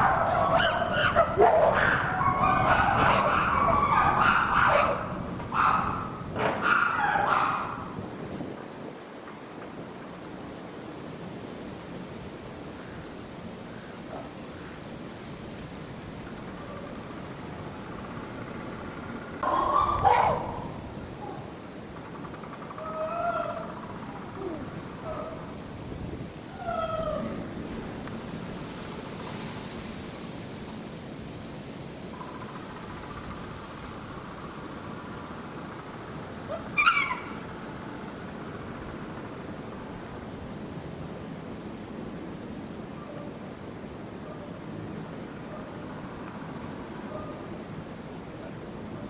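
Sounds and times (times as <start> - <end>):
steady outdoor hiss: 0.0 - 49.0.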